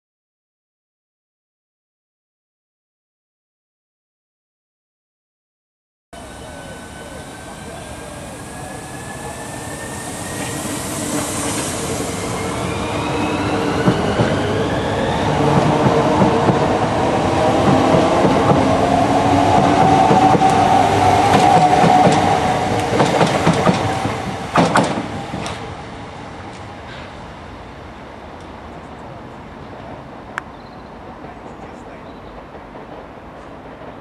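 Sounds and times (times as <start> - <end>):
wheels rumbling on rails: 6.2 - 34.0.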